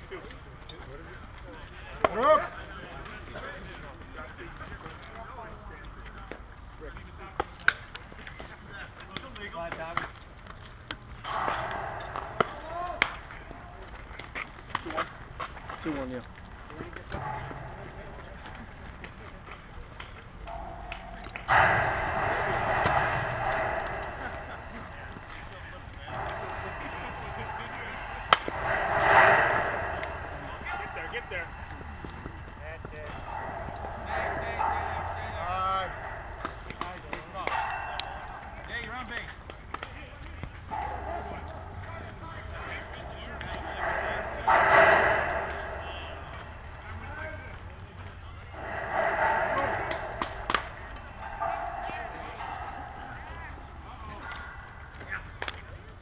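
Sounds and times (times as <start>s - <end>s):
players calling and chattering: 0.0s - 56.0s
sharp crack: 11.2s - 15.1s, 17.1s - 40.0s, 48.5s - 55.7s.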